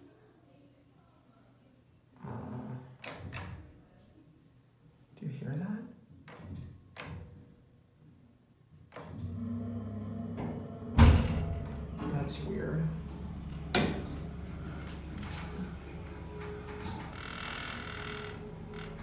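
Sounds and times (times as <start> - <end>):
elevator hum: 9.1 - 19.0
elevator thunk: 10.2 - 12.3
metal door click: 13.6 - 17.2.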